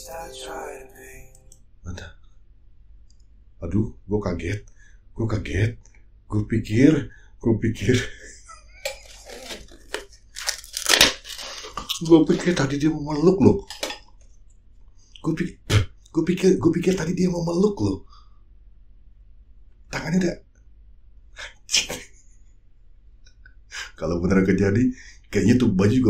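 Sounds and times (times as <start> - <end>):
stifled laughter: 7.9 - 9.2
paper tissue crinkling: 9.0 - 12.8.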